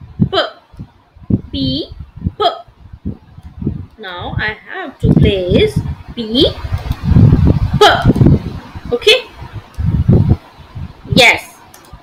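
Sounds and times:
woman saying a letter sound: 1.5 - 2.7, 4.0 - 6.6, 7.7 - 8.2, 8.9 - 9.4, 11.1 - 11.6.

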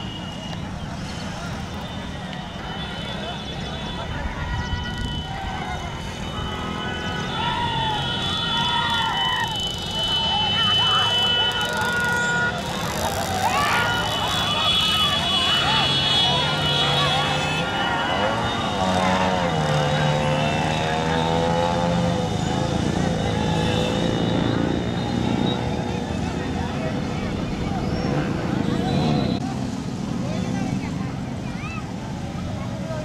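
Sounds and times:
motorcycle engines at speed: 0.1 - 33.0.

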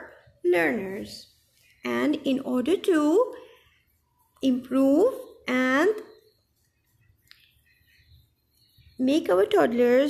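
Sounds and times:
faint high chirp: 0.0 - 10.0.

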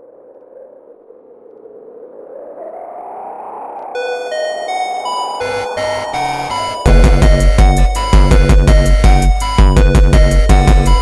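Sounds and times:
hazy synth swell: 3.1 - 9.2
bright synth melody: 4.0 - 11.0
low bass line: 5.5 - 11.0.

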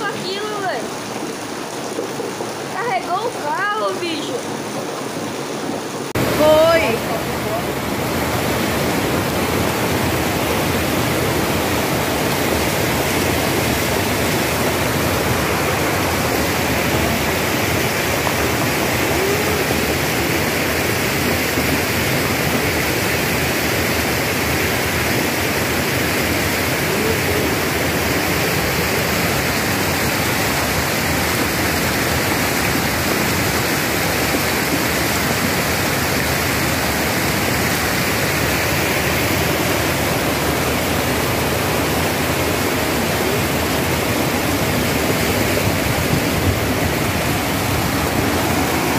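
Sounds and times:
floodwater rushing: 0.0 - 48.9
heavy rain: 0.0 - 48.9.

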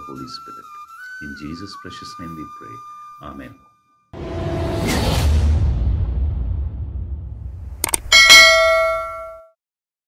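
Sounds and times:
notification bell ding: 8.1 - 9.5.

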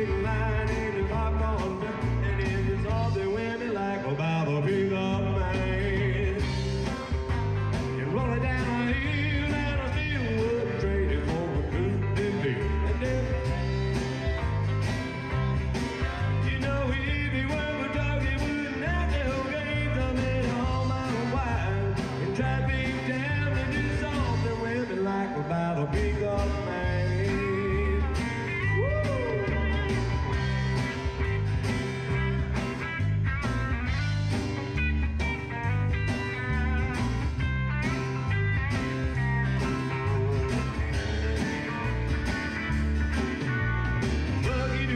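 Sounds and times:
live rock band playing: 0.0 - 44.9.

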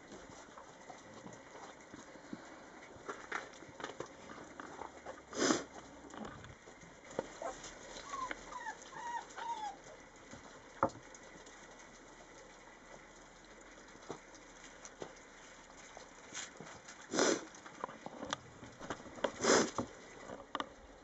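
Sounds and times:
paws on gravel and snow: 0.0 - 6.0
animal whining or chirping: 7.4 - 10.0.

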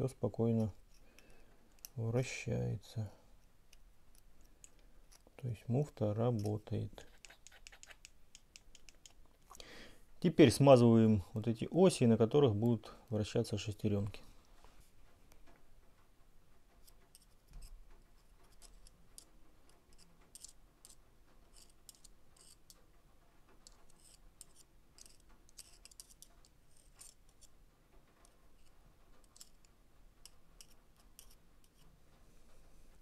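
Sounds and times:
brush clicking and scratching: 3.4 - 9.6, 16.8 - 22.8, 23.6 - 31.9.

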